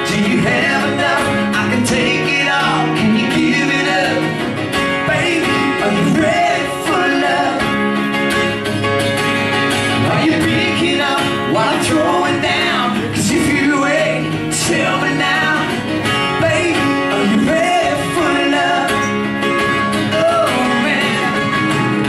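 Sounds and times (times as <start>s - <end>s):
man singing country song: 0.0s - 22.0s
strummed acoustic guitar: 0.0s - 22.0s.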